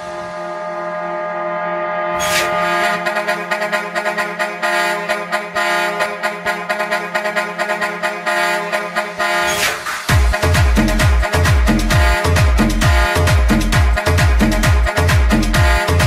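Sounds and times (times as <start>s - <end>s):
sustained synth chord: 0.0s - 16.0s
club dance music: 2.9s - 16.0s
rapid drum roll: 9.7s - 16.0s.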